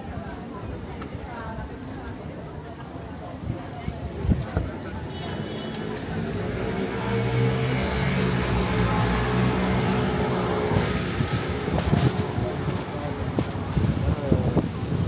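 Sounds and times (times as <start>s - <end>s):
car passing on wet street: 5.8s - 13.7s.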